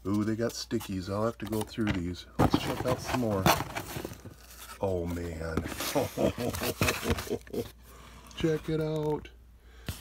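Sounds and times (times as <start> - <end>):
man laughing: 5.7 - 7.8.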